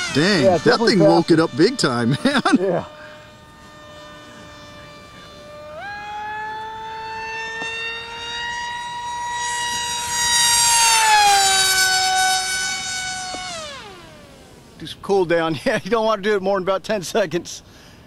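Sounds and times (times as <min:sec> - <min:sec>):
model jet motor whining: 0:00.0 - 0:15.2.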